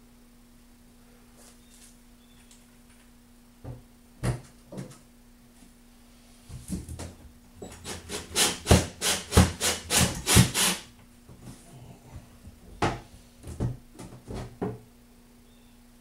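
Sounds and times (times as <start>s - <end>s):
cordless drill driving screw: 7.7s - 10.8s.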